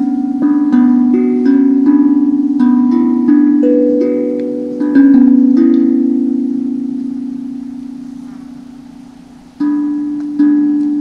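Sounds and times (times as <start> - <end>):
handpan notes ringing: 0.0 - 11.0.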